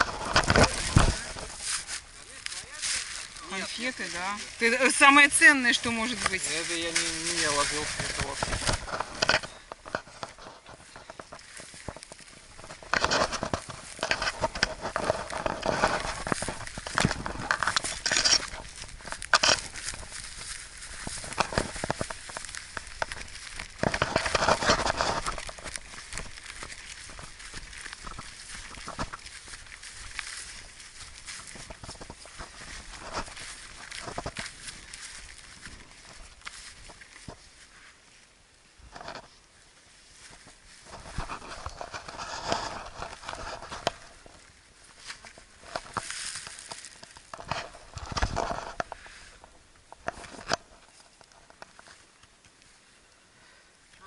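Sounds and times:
tall grass rustling against camera: 0.0 - 54.0.

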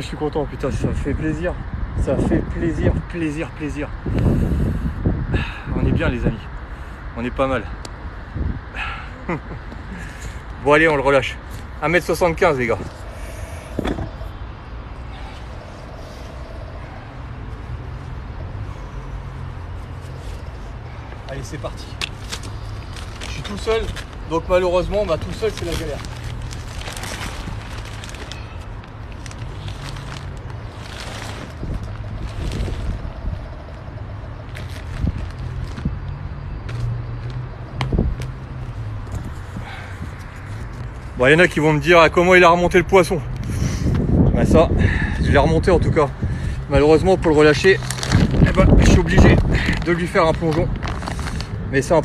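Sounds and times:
low traffic rumble: 0.0 - 52.0.

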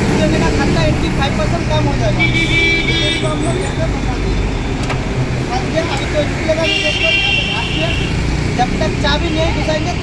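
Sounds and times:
road traffic: 0.0 - 10.0
vehicle horn: 2.2 - 3.4, 6.6 - 8.2.

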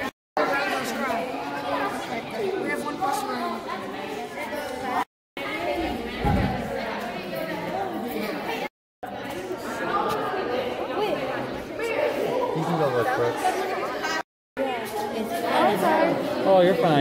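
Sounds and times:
people chattering indoors: 0.0 - 17.0.

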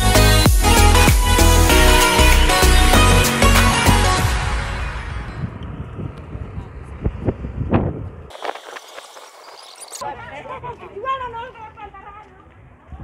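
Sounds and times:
people talking: 10.0 - 13.0.

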